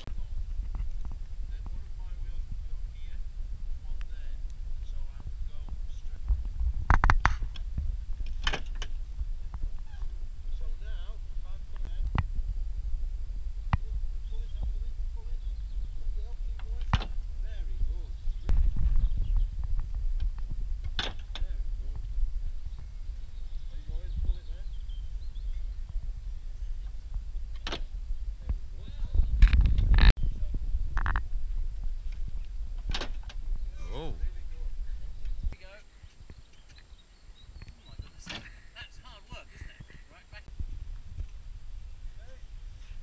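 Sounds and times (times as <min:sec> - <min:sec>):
wind rumbling on microphone: 0:00.0 - 0:43.0
faint voices: 0:13.2 - 0:18.5, 0:21.2 - 0:27.3, 0:33.7 - 0:36.1.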